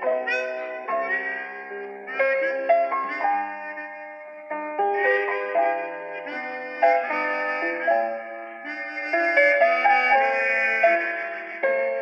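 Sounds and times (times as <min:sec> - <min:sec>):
harmonica melody: 0:00.0 - 0:12.0.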